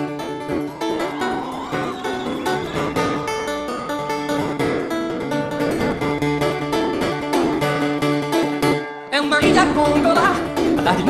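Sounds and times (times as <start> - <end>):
acoustic guitar picking: 0.0 - 11.0.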